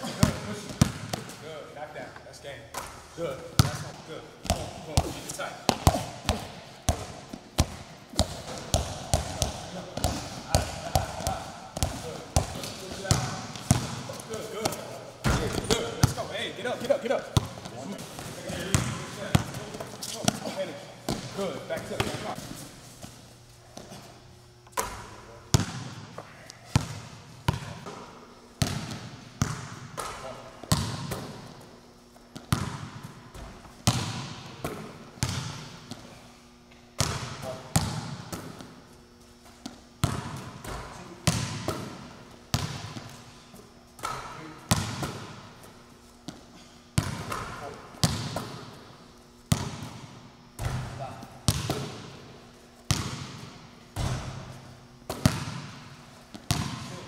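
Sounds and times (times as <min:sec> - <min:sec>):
ball hitting rim and backboard: 0:00.0 - 0:01.4, 0:03.6 - 0:16.3, 0:17.4 - 0:22.4, 0:24.8 - 0:26.1, 0:26.7 - 0:31.6, 0:32.4 - 0:36.1, 0:37.0 - 0:38.8, 0:39.6 - 0:43.2, 0:44.0 - 0:45.5, 0:47.0 - 0:48.8, 0:49.5 - 0:52.2, 0:52.9 - 0:57.0
basketballs bouncing: 0:00.0 - 0:01.5, 0:02.7 - 0:36.2, 0:37.0 - 0:57.0.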